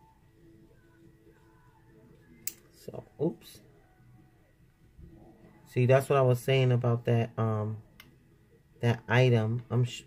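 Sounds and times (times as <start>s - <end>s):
sharp click of crafting tools: 2.4s - 2.7s.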